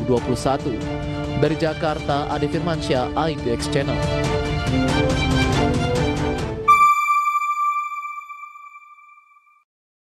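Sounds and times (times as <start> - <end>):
bright chime note: 6.7 - 9.5.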